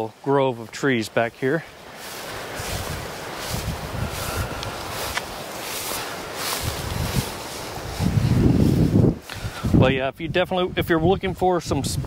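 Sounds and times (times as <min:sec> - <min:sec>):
grass swishing underfoot: 0:00.0 - 0:10.0
wind buffeting microphone: 0:01.9 - 0:12.0.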